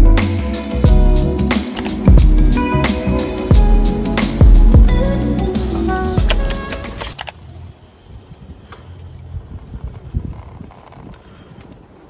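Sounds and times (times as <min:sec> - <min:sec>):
background music: 0:00.0 - 0:07.2
bicycle rumbling on paved path: 0:07.3 - 0:12.0.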